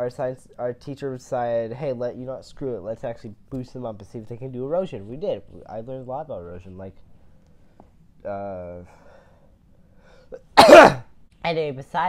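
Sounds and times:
boy coughing: 10.3s - 11.1s.

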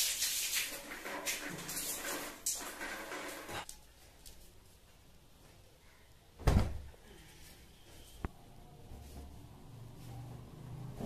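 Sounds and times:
heavy thump of something shut: 6.4s - 6.9s.

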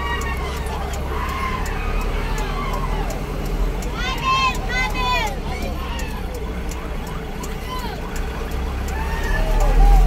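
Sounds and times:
car engine and road rumble: 0.0s - 10.0s
people shouting: 0.0s - 10.0s.

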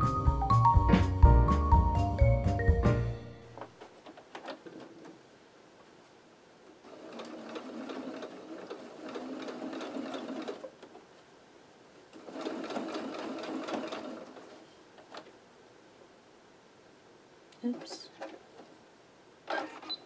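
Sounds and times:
electric sewing machine stitching: 6.8s - 10.7s, 12.2s - 14.4s, 19.5s - 20.0s.

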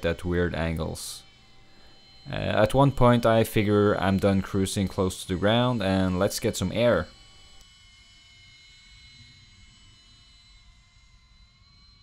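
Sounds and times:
distant drone motors whining: 0.0s - 12.0s.

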